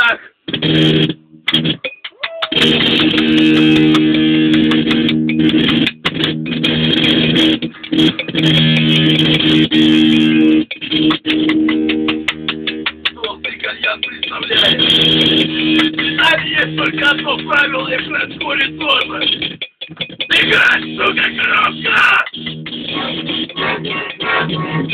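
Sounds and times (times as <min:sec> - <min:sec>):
strummed guitar: 0:00.5 - 0:24.9
accordion chords: 0:09.7 - 0:19.3, 0:20.3 - 0:24.9.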